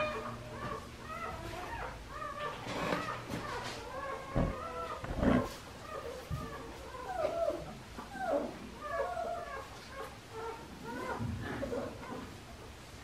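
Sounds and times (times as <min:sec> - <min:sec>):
puppies whining and yipping: 0:00.0 - 0:12.4.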